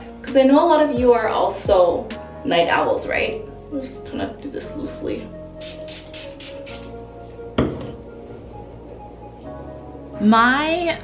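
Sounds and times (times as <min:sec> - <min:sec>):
background music: 0:00.0 - 0:11.0
spray bottle hissing: 0:05.6 - 0:06.9.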